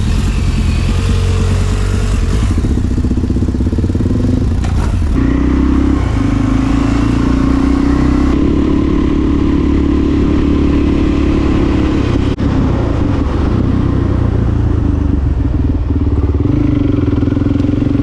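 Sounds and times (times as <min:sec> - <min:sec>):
motorcycle pulling away: 0:00.0 - 0:18.0.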